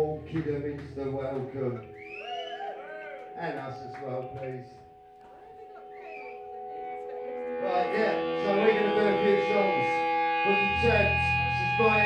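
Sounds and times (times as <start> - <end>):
electric guitar sustaining tones: 0.0 - 12.0
person singing: 6.8 - 12.0
low bass note: 7.6 - 12.0.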